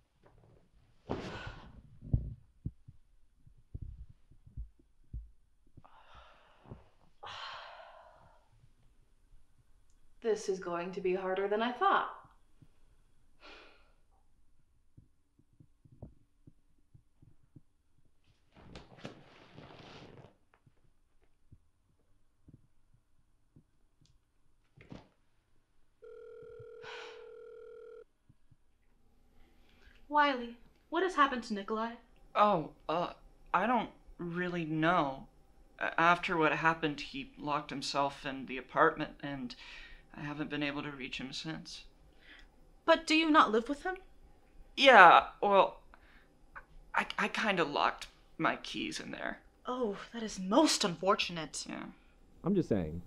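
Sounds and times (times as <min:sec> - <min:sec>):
soft low thumps: 0:01.4 - 0:05.9, 0:14.8 - 0:18.2
phone call tone: 0:26.0 - 0:28.1.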